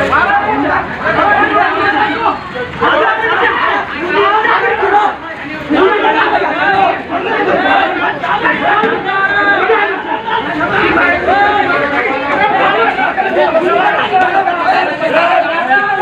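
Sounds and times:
men shouting over one another: 0.0 - 16.0.

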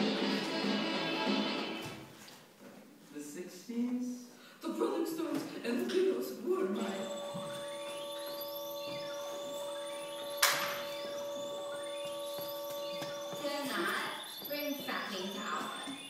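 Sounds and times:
humming electronic drone: 6.8 - 14.4
rising whistling sweeps: 6.9 - 16.0.

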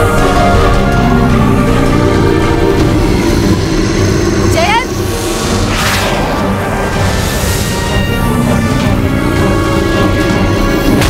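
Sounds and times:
dramatic music: 0.0 - 11.0
monster rumbling: 0.0 - 11.0.

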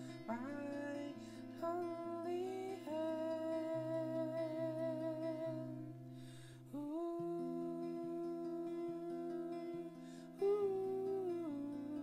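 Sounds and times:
acoustic guitar picking: 0.0 - 12.0
man breathing in: 6.1 - 6.7.

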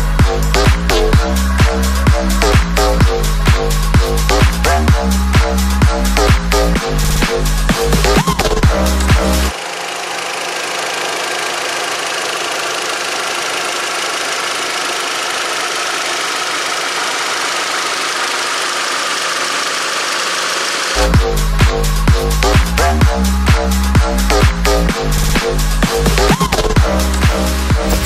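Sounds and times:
electronic dance music: 0.0 - 11.1, 20.6 - 28.0
car engine idling: 0.0 - 28.0.

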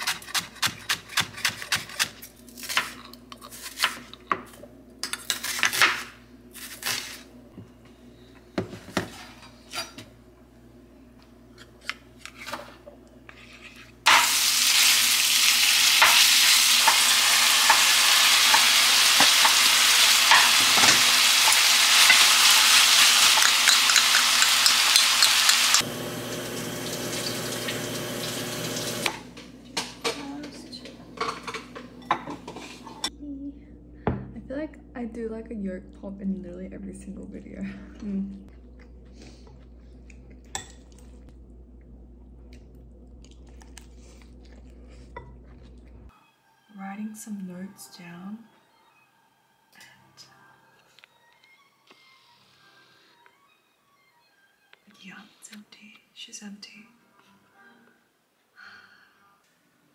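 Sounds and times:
vegetables sizzling in frying pan: 14.1 - 29.1
dishes clattering: 29.7 - 33.1.

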